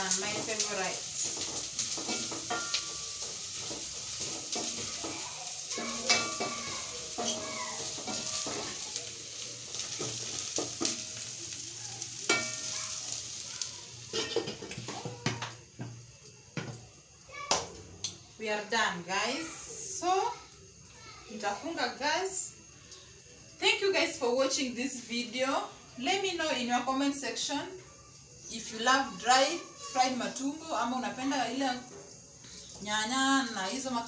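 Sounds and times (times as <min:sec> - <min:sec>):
tripe sizzling in a pot: 0:00.0 - 0:34.0.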